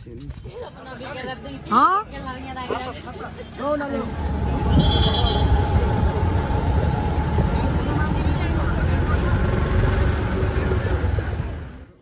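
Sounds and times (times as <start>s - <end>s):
chatter of passers-by: 0.0s - 12.0s
traffic rumble: 0.0s - 12.0s.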